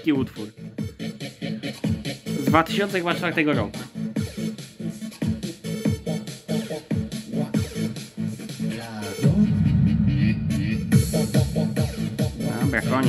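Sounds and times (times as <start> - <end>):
electronic music with steady beat: 0.0 - 13.0
heavy bass line: 0.0 - 13.0.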